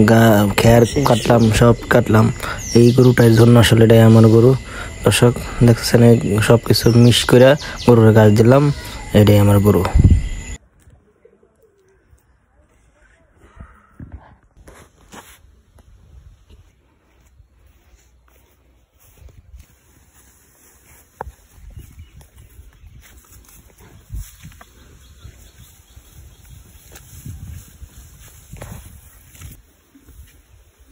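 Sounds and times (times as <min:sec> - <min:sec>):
grass rustling: 0:14.6 - 0:30.9.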